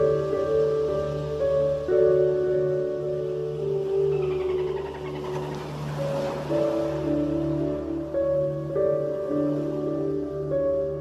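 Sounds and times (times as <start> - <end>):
soft ambient music: 0.0 - 11.0.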